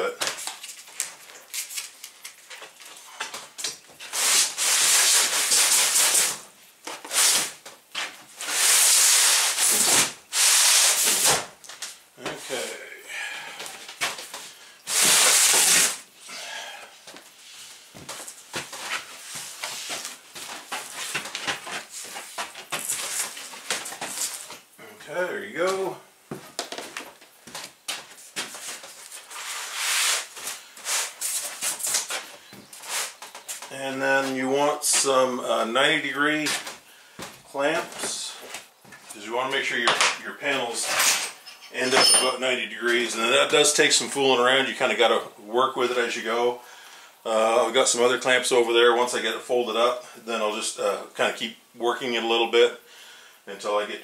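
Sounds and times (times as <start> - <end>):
plywood panels scraping: 2.5 - 12.7, 13.7 - 16.0, 17.1 - 24.7, 26.5 - 35.2.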